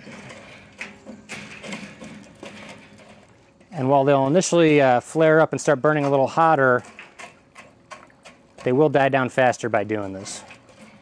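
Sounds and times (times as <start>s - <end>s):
fire poker knocking and scraping: 0.0s - 4.9s, 5.7s - 11.0s.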